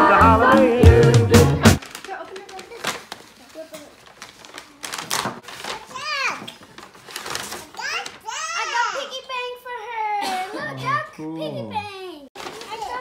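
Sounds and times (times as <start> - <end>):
background music: 0.0 - 1.8
paper bag crinkling: 1.8 - 8.9, 12.4 - 13.0
child's voice: 5.7 - 6.5, 7.6 - 13.0.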